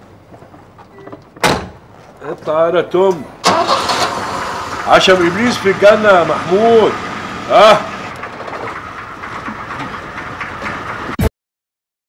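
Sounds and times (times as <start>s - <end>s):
car engine idling: 3.4s - 11.2s.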